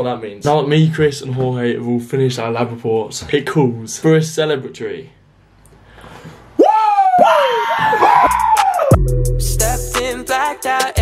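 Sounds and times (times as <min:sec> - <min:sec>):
person whooping: 0:06.6 - 0:09.0.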